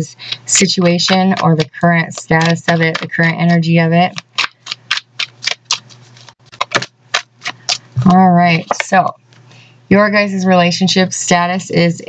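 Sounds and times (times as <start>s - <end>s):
cards being shuffled: 1.1s - 8.9s.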